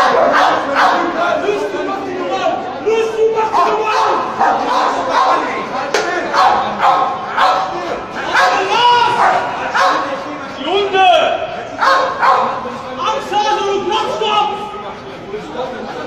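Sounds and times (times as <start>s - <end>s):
dogs barking: 0.0s - 1.4s, 3.5s - 5.6s, 6.3s - 10.2s, 11.8s - 12.7s
crowd shouting: 0.0s - 14.9s.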